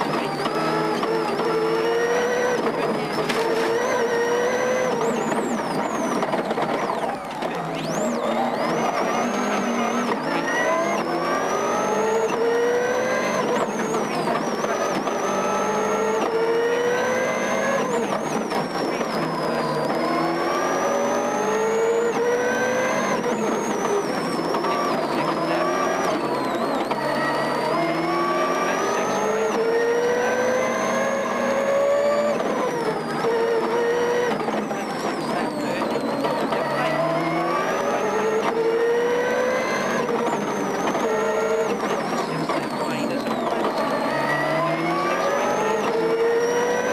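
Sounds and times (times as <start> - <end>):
car engine revving hard: 0.0 - 46.9.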